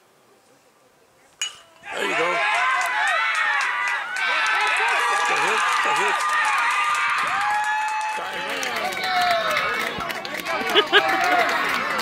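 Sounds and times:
crowd yelling and cheering: 1.8s - 12.0s
people clapping: 2.0s - 12.0s.

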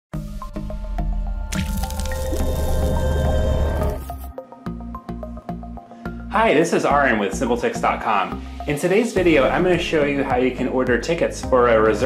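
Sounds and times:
logo intro music with low bass: 0.2s - 5.8s
wet splashy sound effect: 1.5s - 3.0s.

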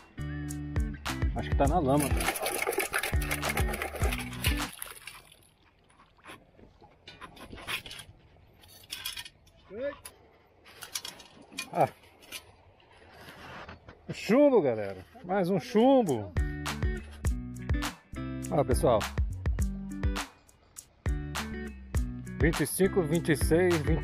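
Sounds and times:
water and sand sloshing: 1.6s - 16.3s
metal scoop digging into wet mud: 1.8s - 5.4s.

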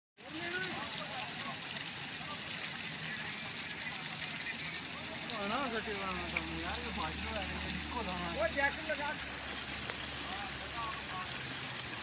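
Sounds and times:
flowing river water: 0.2s - 12.0s.

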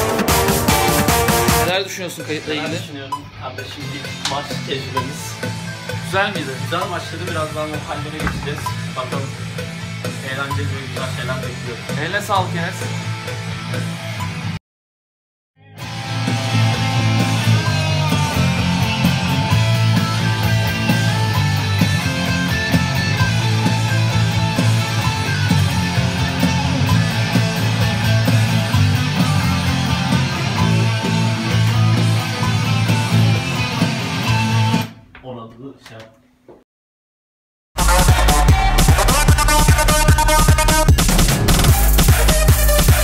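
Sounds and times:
full band music: 0.0s - 1.7s
electric guitar: 15.7s - 34.9s.

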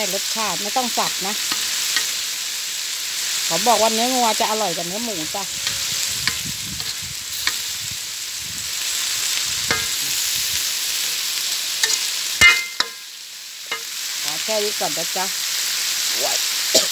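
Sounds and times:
stir-fry sizzling in a wok: 0.0s - 16.9s
ringing clank of spatula: 9.7s - 10.0s, 11.8s - 13.1s.

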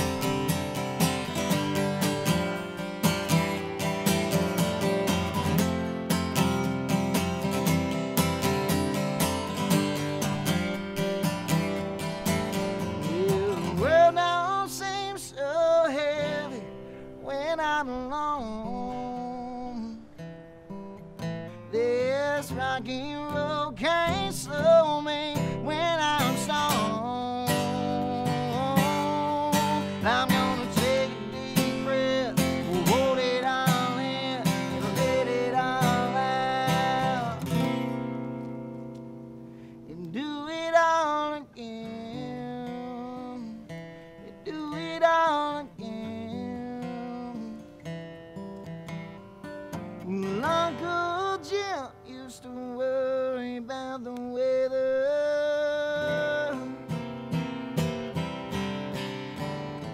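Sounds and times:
man singing: 0.0s - 20.2s, 21.7s - 38.0s, 39.8s - 47.8s, 50.0s - 57.4s
acoustic guitar strumming: 0.0s - 59.9s.

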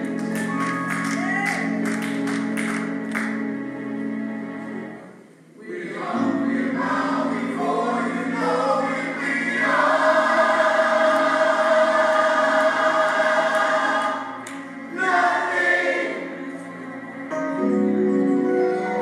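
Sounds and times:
gospel choir singing: 5.6s - 16.9s.

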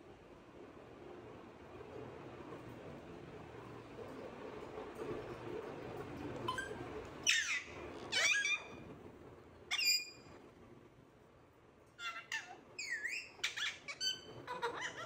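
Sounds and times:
parakeet chirps and whistles: 6.5s - 8.8s, 9.7s - 10.3s, 12.0s - 15.0s
parakeets squawking: 7.2s - 8.8s, 12.0s - 15.0s.

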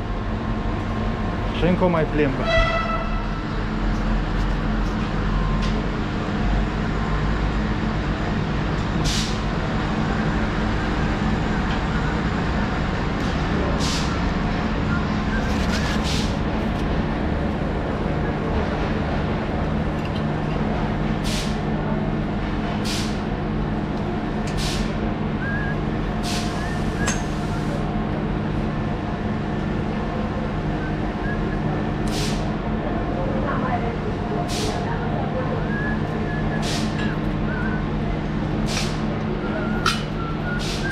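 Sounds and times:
low hum of standing trains: 0.0s - 40.9s.

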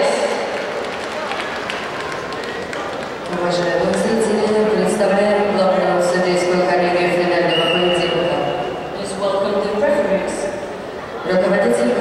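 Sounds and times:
crowd murmur in sports hall: 0.0s - 12.0s.

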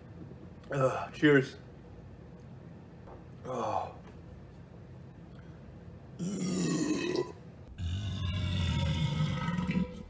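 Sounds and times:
man belching: 6.2s - 10.0s.

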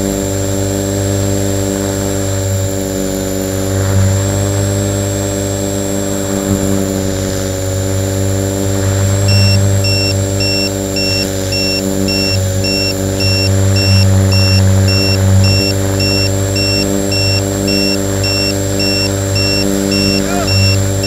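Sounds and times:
drone propellers humming: 0.4s - 21.0s
high double-toned electronic beeps: 9.3s - 21.0s.

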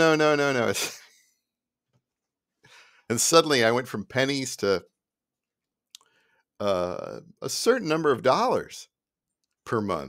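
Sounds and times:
person speaking: 0.0s - 1.1s, 3.1s - 4.8s, 6.6s - 8.8s, 9.6s - 10.0s.

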